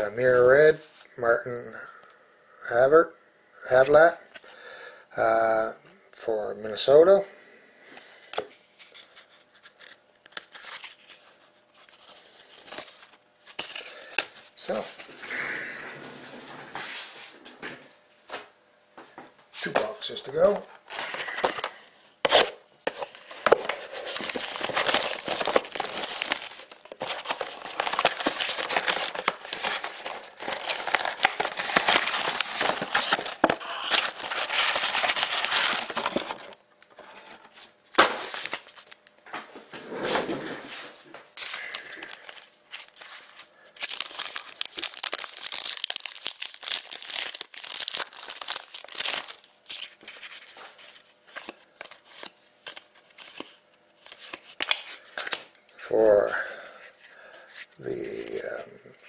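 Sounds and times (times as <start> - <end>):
foil packs crinkling: 20.4 - 36.6, 37.9 - 39.0, 41.4 - 55.4
shrink wrap tearing and crackling: 23.4 - 36.6, 41.4 - 50.4.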